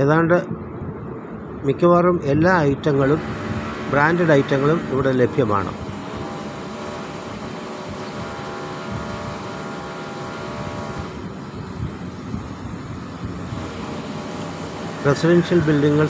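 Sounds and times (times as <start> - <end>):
even rushing noise: 0.0 - 16.0
machine hum: 0.8 - 16.0.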